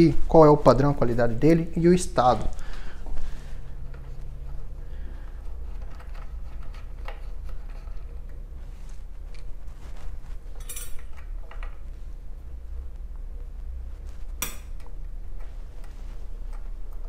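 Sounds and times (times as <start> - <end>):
steady low hum: 0.0 - 17.0
metal nut and washer clinking: 10.5 - 11.7.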